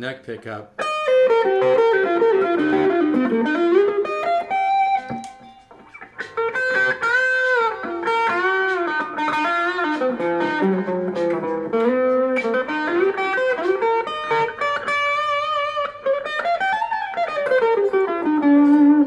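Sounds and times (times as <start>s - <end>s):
clean electric guitar jazz-blues: 0.7s - 19.0s.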